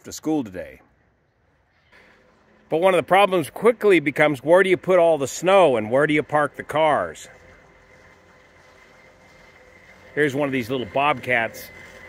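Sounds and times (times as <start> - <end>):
distant engine hum: 0.6 - 12.0.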